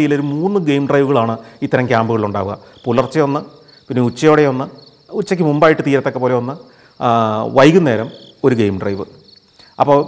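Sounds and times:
man talking: 0.0s - 9.2s, 9.8s - 10.0s
crickets chirping: 0.0s - 10.0s.

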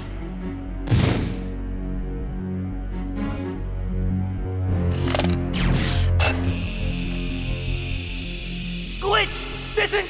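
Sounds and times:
high electronic whirring hiss: 6.3s - 10.0s.

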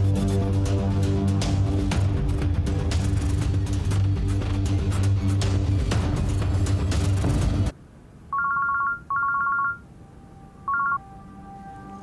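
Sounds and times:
music: 0.0s - 7.8s, 10.1s - 12.0s
mobile phone ringing: 8.3s - 9.9s, 10.6s - 11.1s.

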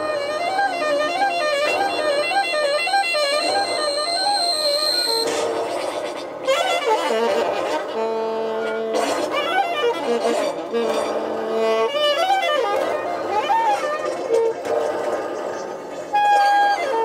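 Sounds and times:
steady high electronic tone: 1.7s - 6.2s
free jazz saxophones and double bass: 6.5s - 14.5s.

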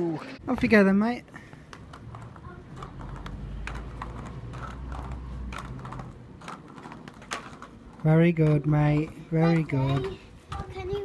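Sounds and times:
roller skates rolling over bricks: 0.4s - 11.0s.

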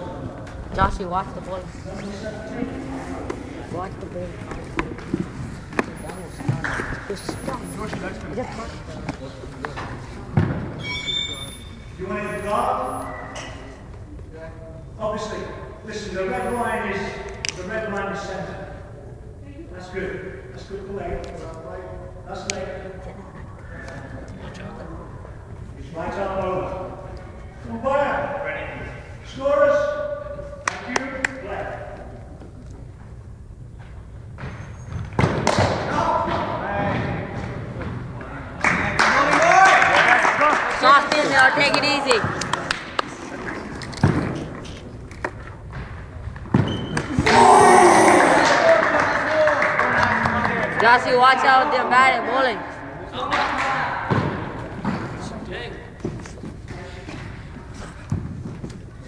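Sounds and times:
faint high-pitched squeak: 10.8s - 13.7s
sharp knocks echoing in hall: 35.1s - 38.0s
players' voices: 47.1s - 55.8s.

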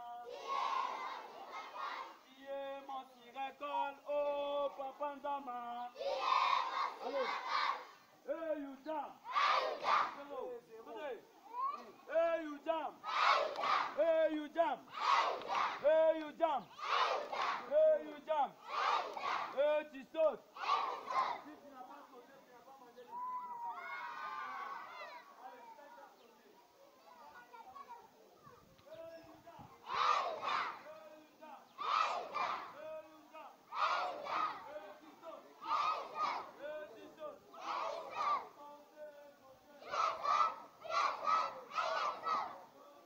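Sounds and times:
children chanting in rhythm: 0.0s - 5.0s, 5.8s - 10.5s, 12.0s - 21.6s, 29.0s - 43.0s.

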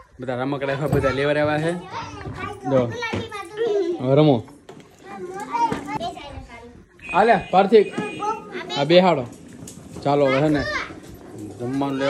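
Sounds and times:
small children chattering: 0.0s - 12.0s.

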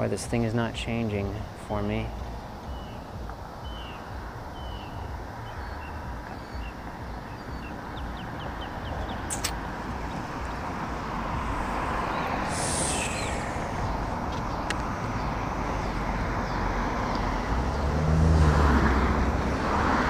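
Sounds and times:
road traffic rumble: 0.0s - 20.0s
bird chirps: 2.6s - 10.7s, 11.6s - 16.7s
brief hiss: 9.3s - 9.6s, 12.4s - 13.8s.

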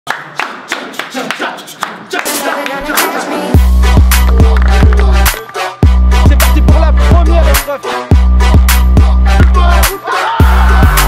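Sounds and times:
people clapping in rhythm: 0.1s - 6.8s, 8.7s - 11.0s.

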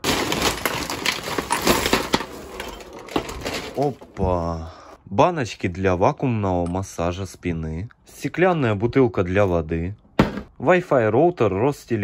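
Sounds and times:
items clattering onto floor: 0.0s - 4.2s
plastic bag rustling: 0.0s - 4.2s.

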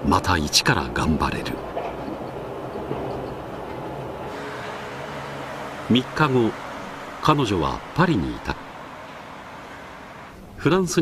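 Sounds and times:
train running noise inside carriage: 0.0s - 11.0s.

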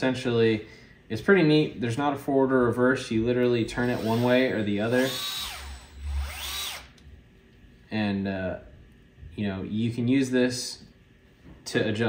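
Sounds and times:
cordless screwdriver motor whine: 5.0s - 6.9s.

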